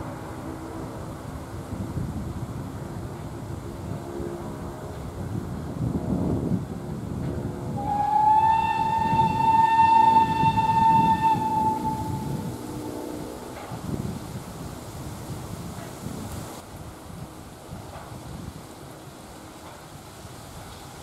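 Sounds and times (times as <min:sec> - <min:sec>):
steam whistle blast: 0:07.8 - 0:13.6.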